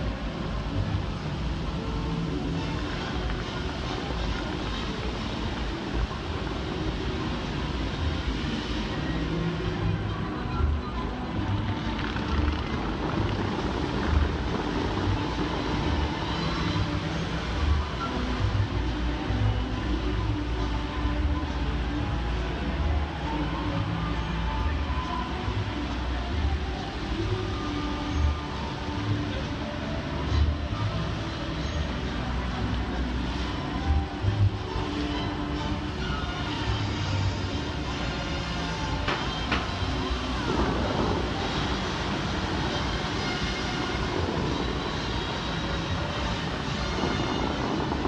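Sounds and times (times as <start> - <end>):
car traffic passing: 0.0 - 48.0
faint music: 0.0 - 48.0
people talking: 0.0 - 48.0
steady low rumble: 0.0 - 48.0
water jets rushing: 0.0 - 48.0.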